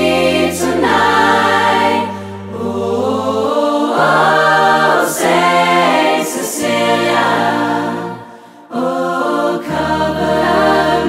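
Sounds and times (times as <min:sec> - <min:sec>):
a cappella choir singing: 0:00.0 - 0:11.0.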